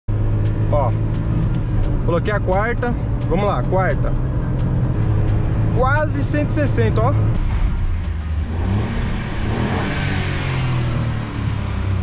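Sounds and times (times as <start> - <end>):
car engine at high revs: 0.1 - 12.0.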